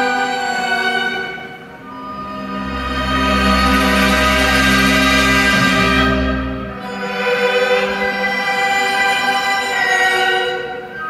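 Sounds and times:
orchestra holding sustained chords: 0.0s - 11.0s.

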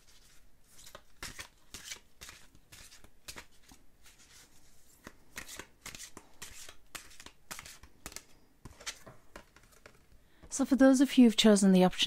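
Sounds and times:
cards shuffled by hand: 0.0s - 10.2s.

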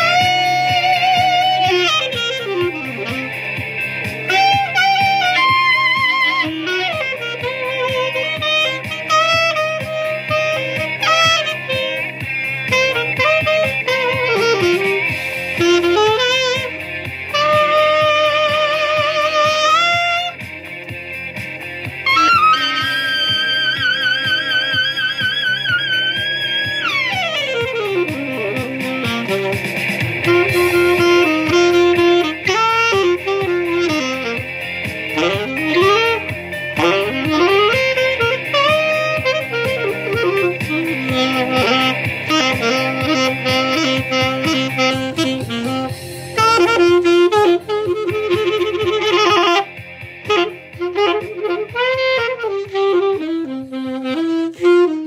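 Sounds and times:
rock track with guitar: 0.0s - 54.9s
saxophone playing: 0.0s - 55.0s.

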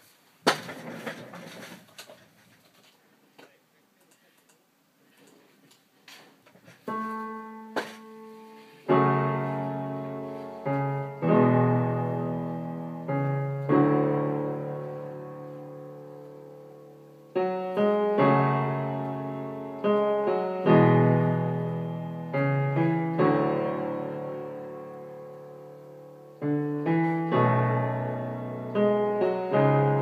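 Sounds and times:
rustling: 0.0s - 3.5s
electronic keyboard piano chords: 6.8s - 30.0s.

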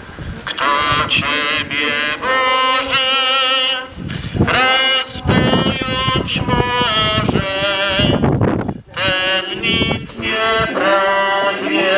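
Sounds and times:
hymn singing over loudspeakers: 0.4s - 11.9s.

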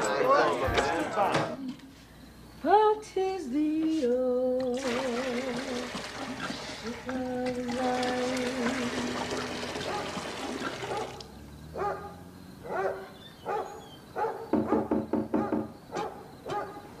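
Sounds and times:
tap water running into kettle: 4.6s - 11.3s.

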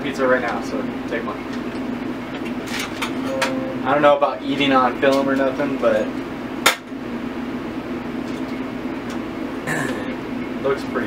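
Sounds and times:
air conditioner hum: 0.0s - 11.0s.

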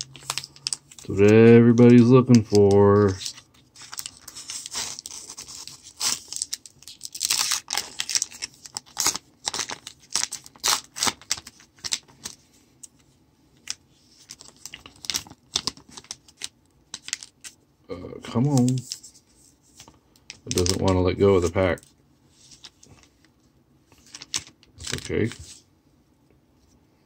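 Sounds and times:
plastic wrapper crinkling and tearing: 0.0s - 13.0s, 13.6s - 17.6s, 18.2s - 19.2s, 19.8s - 23.1s, 23.9s - 25.5s.

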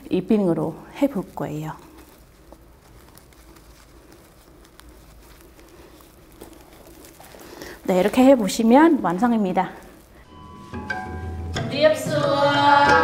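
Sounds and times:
cloth sash rustling: 1.4s - 9.0s.

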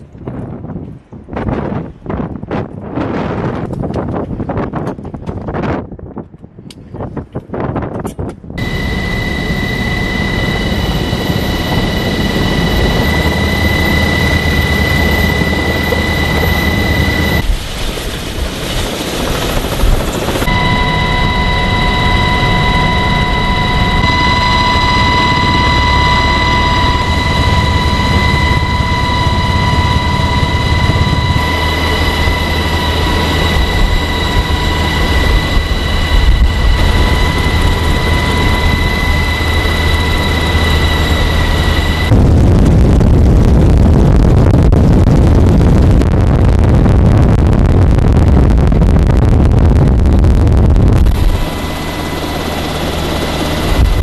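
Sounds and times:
helicopter cabin rumble: 7.7s - 54.0s
high steady whines: 8.5s - 54.0s.

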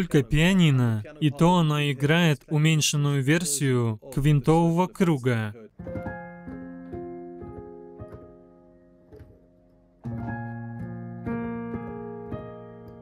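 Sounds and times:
piano chords: 5.5s - 13.0s.

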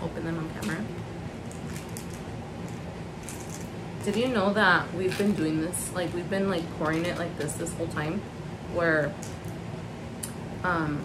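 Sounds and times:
plastic wrapper crinkling: 0.6s - 7.6s.

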